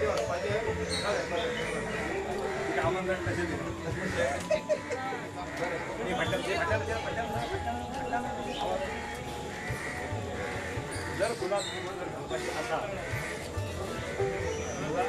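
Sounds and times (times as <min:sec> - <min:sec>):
indistinct voices: 0:00.0 - 0:15.0.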